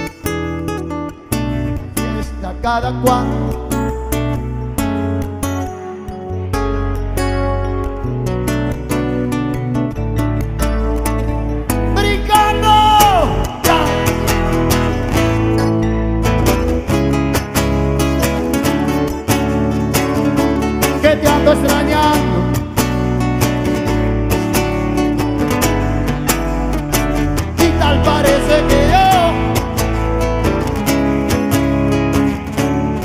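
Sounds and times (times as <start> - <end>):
live band playing bachata: 12.2 - 33.0.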